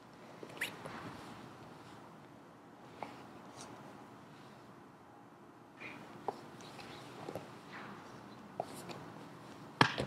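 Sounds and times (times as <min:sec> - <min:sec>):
sharp skin slap: 0:09.8 - 0:10.0.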